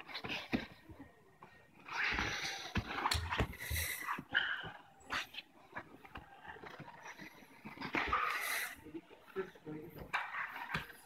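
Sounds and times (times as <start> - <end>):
people breathing hard and straining: 0.0 - 11.0.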